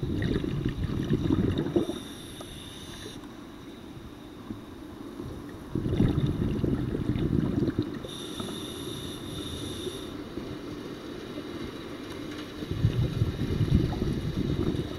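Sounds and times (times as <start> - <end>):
low rumbling underwater noise: 0.0 - 11.8, 12.6 - 14.9
high steady whine: 0.0 - 14.9.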